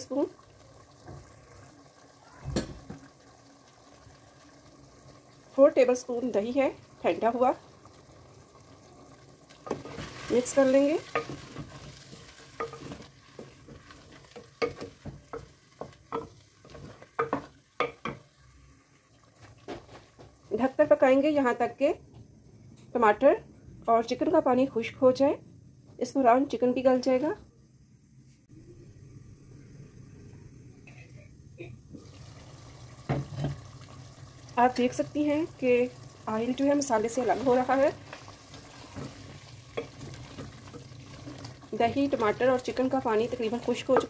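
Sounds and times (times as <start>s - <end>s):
faint sizzle: 0.0s - 44.0s.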